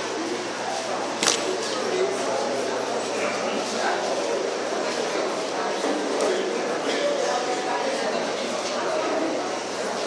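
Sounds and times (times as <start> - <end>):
murmur of many voices: 0.0 - 10.0.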